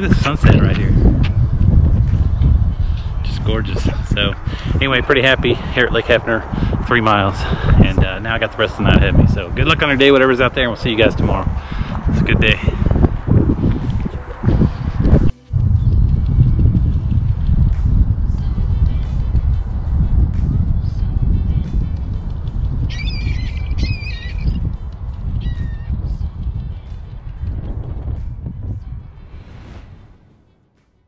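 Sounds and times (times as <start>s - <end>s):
loud low rumble: 11.4s - 19.0s, 25.2s - 30.8s
waterfowl calling: 22.9s - 24.6s.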